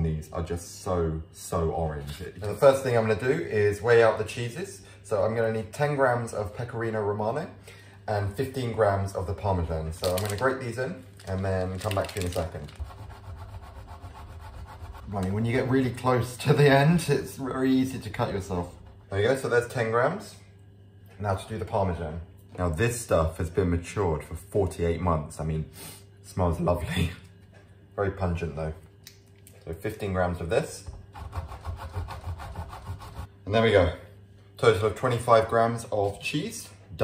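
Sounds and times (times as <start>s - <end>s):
cheese grating on metal grater: 11.8s - 15.3s, 31.2s - 33.3s.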